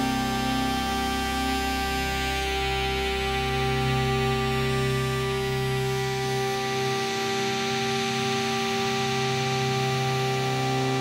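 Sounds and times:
synthesizer drone: 0:00.0 - 0:11.0.

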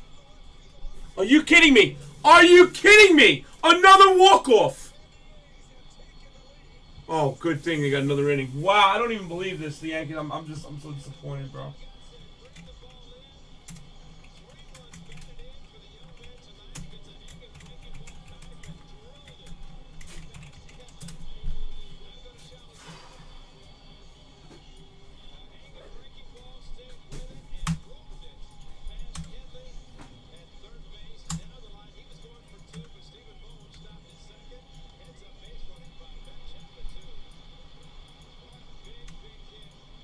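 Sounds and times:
faint music: 0:00.0 - 0:40.0
voices in background: 0:00.0 - 0:40.0
typing on keyboard: 0:13.7 - 0:21.2, 0:29.0 - 0:29.4.

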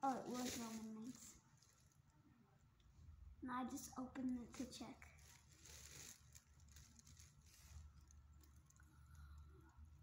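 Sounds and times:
faint rustling and handling noise: 0:00.0 - 0:10.0.

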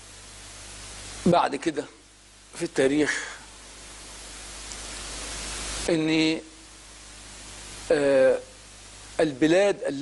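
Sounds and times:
background hiss: 0:00.0 - 0:10.0.

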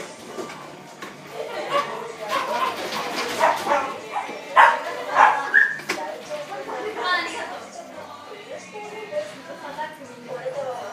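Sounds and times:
people's voices: 0:00.0 - 0:10.9
puppy yipping: 0:04.6 - 0:05.8.

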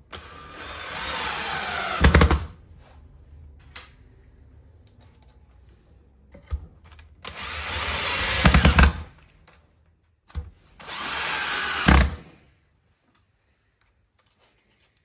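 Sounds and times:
drill driving screws: 0:00.1 - 0:02.4, 0:07.2 - 0:09.1, 0:10.8 - 0:12.3.

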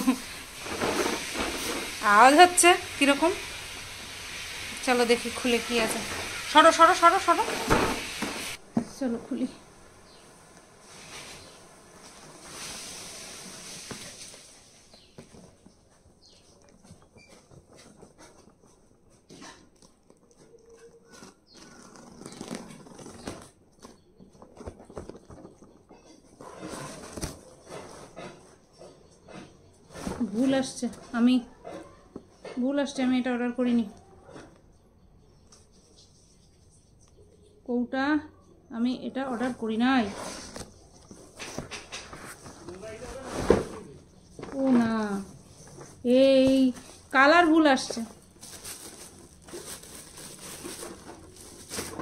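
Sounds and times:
woman speaking: 0:02.0 - 0:03.4, 0:04.8 - 0:07.7, 0:08.8 - 0:09.6, 0:37.7 - 0:40.2, 0:44.5 - 0:45.4, 0:46.0 - 0:48.2
cardboard box rustling: 0:21.1 - 0:28.1, 0:40.1 - 0:52.0.

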